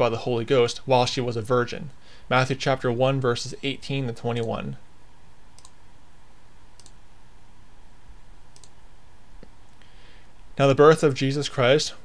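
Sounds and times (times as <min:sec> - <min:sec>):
faint steady hum: 0:00.0 - 0:12.0
computer mouse clicks: 0:05.6 - 0:05.8, 0:06.8 - 0:07.0, 0:08.5 - 0:08.8.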